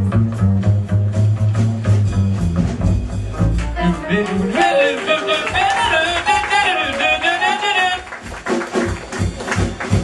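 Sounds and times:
low bass notes: 0:00.0 - 0:05.0
drum strokes: 0:00.0 - 0:10.0
jazz band playing: 0:00.0 - 0:10.0.

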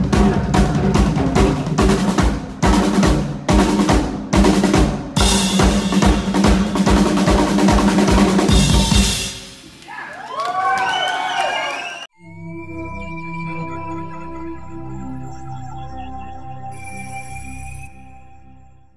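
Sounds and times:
drum roll: 0:00.0 - 0:10.0.

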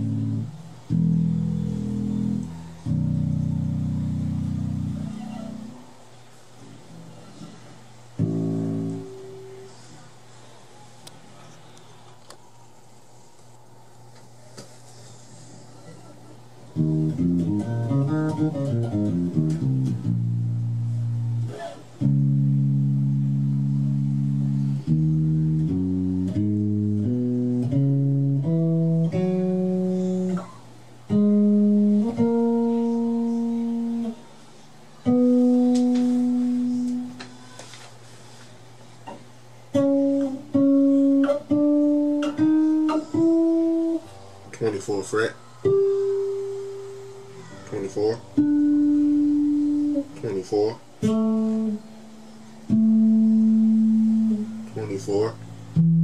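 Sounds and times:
electric bass notes: 0:00.0 - 0:05.8, 0:08.1 - 0:09.7, 0:16.7 - 0:34.3, 0:35.0 - 0:37.3, 0:39.7 - 0:44.8, 0:45.6 - 0:56.0.

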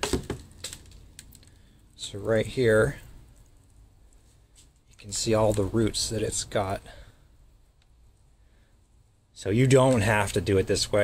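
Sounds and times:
plastic pot and roots crackling: 0:00.0 - 0:11.0.

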